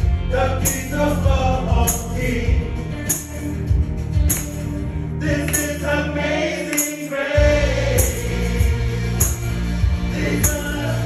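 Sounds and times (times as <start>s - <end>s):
electronic keyboard bass notes: 0.0s - 6.7s, 7.4s - 11.0s
man singing through microphone: 0.2s - 2.9s, 5.2s - 9.0s, 10.1s - 11.0s.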